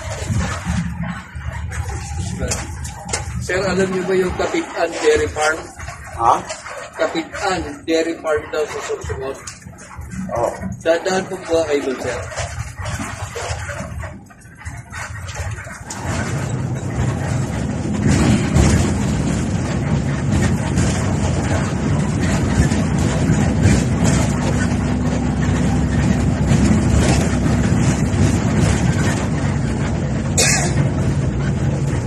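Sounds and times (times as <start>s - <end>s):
bus diesel engine: 0.0s - 32.0s
road noise: 0.0s - 32.0s.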